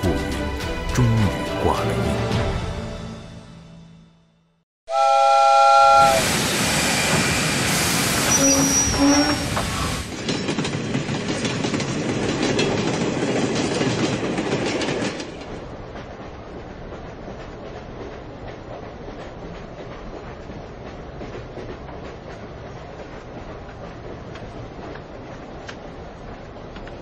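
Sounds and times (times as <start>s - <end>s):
train running along track: 0.0s - 4.2s, 4.9s - 27.0s
steam locomotive whistle chord: 4.9s - 6.4s.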